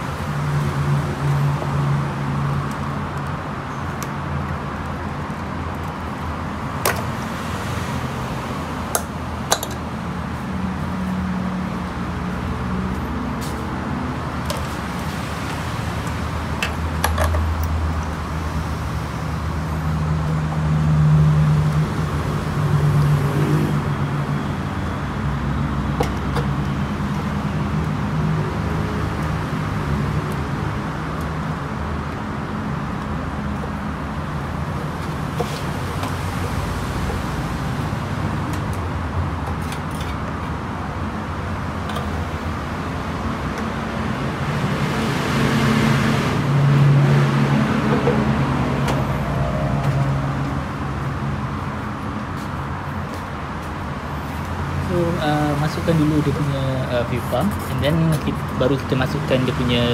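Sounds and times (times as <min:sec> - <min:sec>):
vehicle engine noise: 0:00.0 - 0:59.9
vehicle passing: 0:41.3 - 0:59.9.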